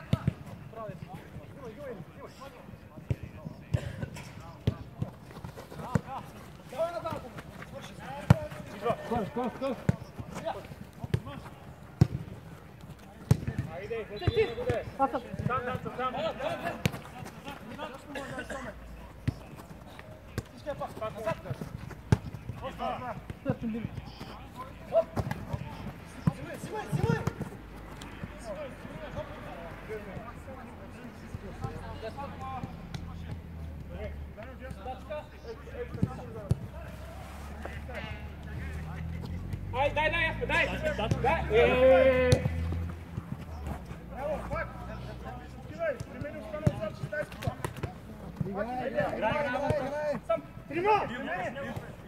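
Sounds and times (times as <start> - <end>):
players calling out: 3.5 - 52.0
football being kicked: 13.3 - 14.8.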